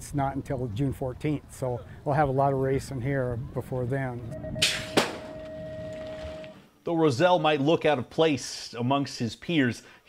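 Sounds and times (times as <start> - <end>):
long electronic start tone: 4.3 - 6.7
starting gate bang: 4.6 - 5.6.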